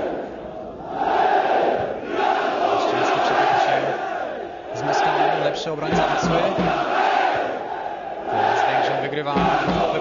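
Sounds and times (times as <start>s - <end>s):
stadium crowd chanting: 0.0s - 10.0s.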